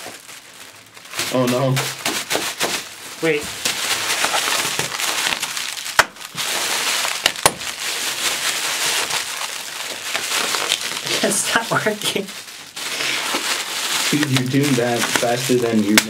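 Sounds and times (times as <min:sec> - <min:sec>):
plastic packing pillows crinkling: 0:00.0 - 0:16.0.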